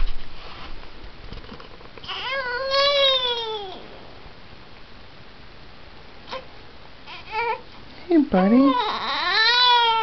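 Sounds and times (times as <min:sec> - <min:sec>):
faint room hiss: 0:00.0 - 0:10.0
infant crying: 0:02.1 - 0:03.8, 0:07.1 - 0:07.6, 0:08.4 - 0:10.0.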